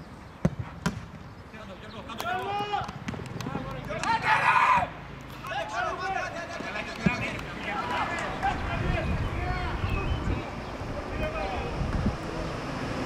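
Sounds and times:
football kicked thud: 0.4 - 1.1
players shouting: 2.1 - 10.2.

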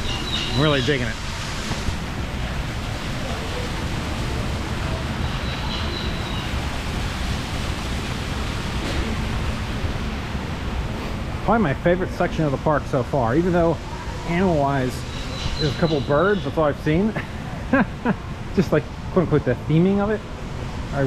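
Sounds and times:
waterfall splashing over rocks: 0.0 - 20.1.

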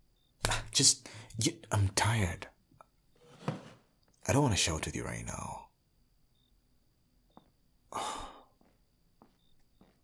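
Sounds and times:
man sighing: 7.9 - 8.6.

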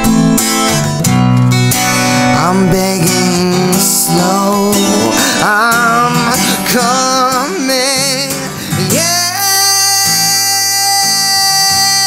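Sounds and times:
strummed acoustic guitar: 0.0 - 12.0
man singing held note: 2.4 - 12.0.

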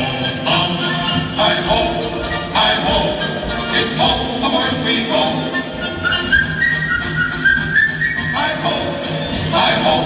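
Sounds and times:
person whistling a tune: 5.6 - 8.4.

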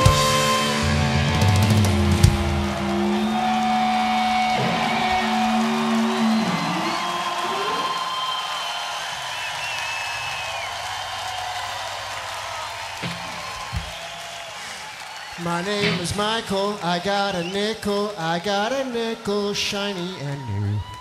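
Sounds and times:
live rock band guitar and bass: 0.0 - 6.7
crowd cheering and whistling: 0.0 - 21.0.

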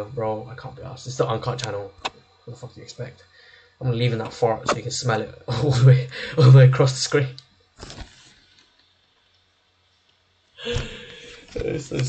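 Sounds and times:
man's stifled breathy laughter: 10.6 - 11.6.

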